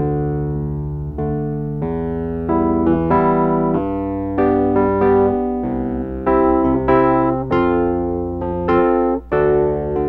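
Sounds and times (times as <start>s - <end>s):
keyboard instrument chords: 0.0s - 10.0s.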